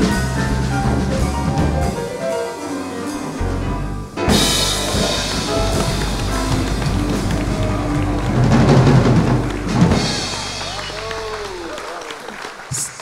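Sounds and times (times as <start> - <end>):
busy drumming: 0.0 - 2.4, 4.2 - 13.0
jazz trio playing: 0.0 - 11.5.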